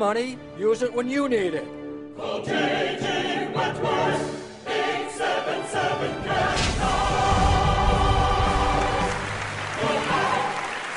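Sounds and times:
low musical accompaniment: 0:00.0 - 0:10.9
operatic choir singing jingle: 0:01.8 - 0:10.9.

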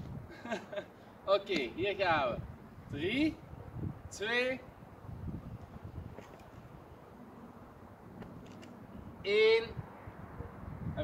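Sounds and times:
man calling out loudly: 0:09.2 - 0:09.8.

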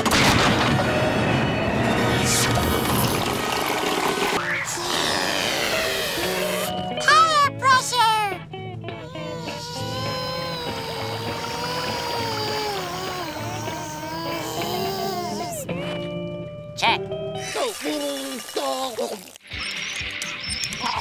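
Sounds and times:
background music: 0:00.0 - 0:18.3.

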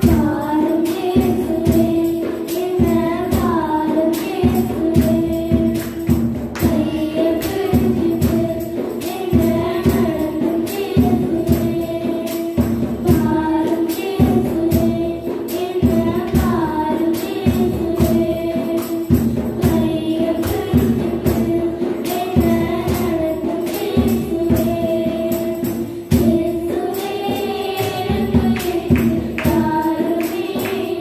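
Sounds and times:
accompanying music with steady beat: 0:00.0 - 0:31.0
girls singing in unison: 0:00.0 - 0:31.0.

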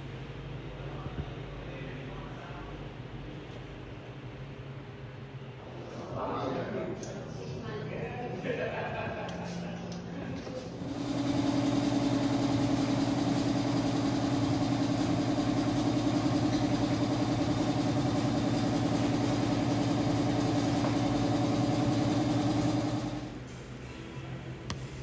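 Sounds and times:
motor humming: 0:10.7 - 0:23.4.

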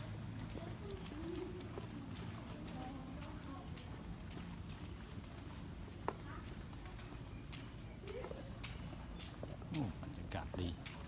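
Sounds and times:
faint voices: 0:00.0 - 0:11.0
footsteps on paved path: 0:00.0 - 0:11.0.

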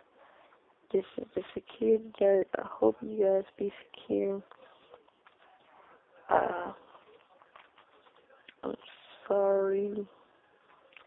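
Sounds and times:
person speaking: 0:00.9 - 0:10.1.

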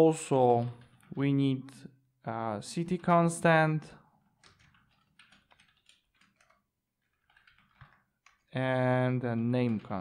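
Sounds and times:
faint keyboard typing: 0:00.5 - 0:01.2, 0:04.1 - 0:10.0.

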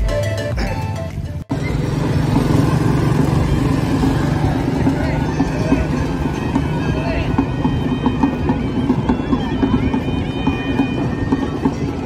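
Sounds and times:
background music: 0:00.0 - 0:12.0
passing traffic engine hum: 0:00.7 - 0:12.0.

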